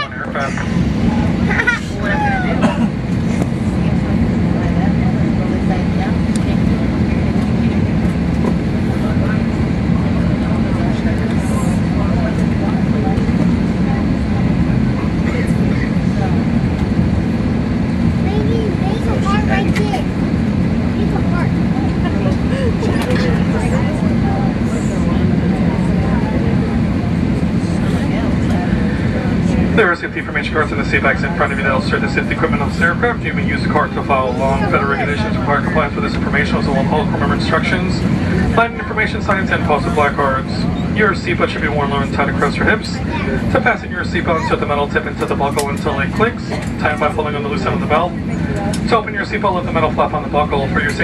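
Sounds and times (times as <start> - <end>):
aircraft cabin drone: 0.0 - 51.0
faint passenger chatter: 0.0 - 51.0.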